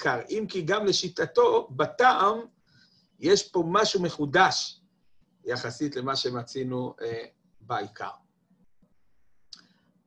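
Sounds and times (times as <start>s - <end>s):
man speaking: 0.0s - 2.5s, 3.2s - 4.8s, 5.5s - 8.2s.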